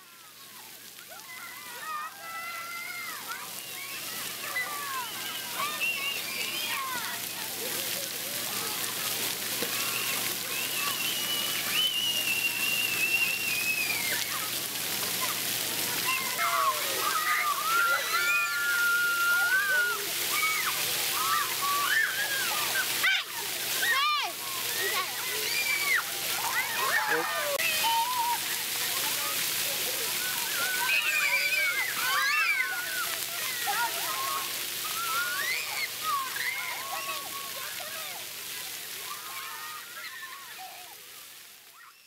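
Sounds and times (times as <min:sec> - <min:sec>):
children shouting and squealing: 0:00.0 - 0:42.0
water jets spraying: 0:00.2 - 0:42.0.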